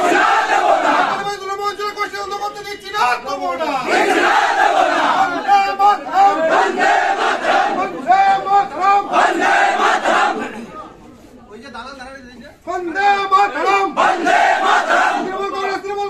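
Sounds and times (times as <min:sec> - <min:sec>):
crowd of protesters shouting: 0:00.0 - 0:01.3, 0:03.6 - 0:10.6, 0:13.4 - 0:15.8.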